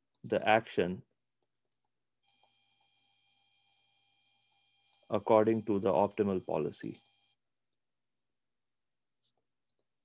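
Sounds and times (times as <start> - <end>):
stylus ticking on tablet screen: 1.4 - 5.2.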